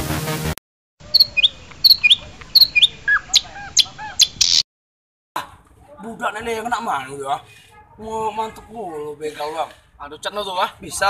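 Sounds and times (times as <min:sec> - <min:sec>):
small bird chirping: 0:01.0 - 0:04.6
bird whistled notes: 0:01.1 - 0:04.6.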